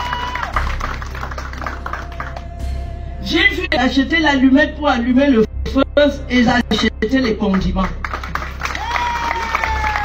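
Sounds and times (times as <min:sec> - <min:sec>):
audience applauding: 0:00.0 - 0:02.5, 0:08.0 - 0:10.0.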